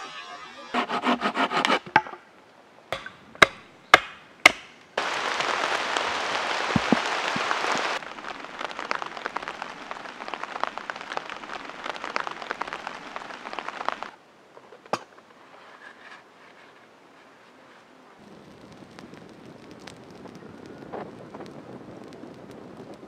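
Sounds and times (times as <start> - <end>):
loud steady hiss: 0.0 - 14.5, 16.9 - 23.0
crackling noise: 0.0 - 23.0
chopping strikes on wood: 2.9 - 4.7
branch cracking and splintering: 6.4 - 14.2.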